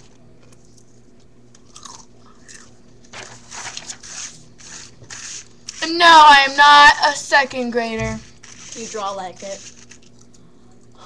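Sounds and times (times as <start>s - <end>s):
chewing and crunching snacks: 0.0s - 3.0s.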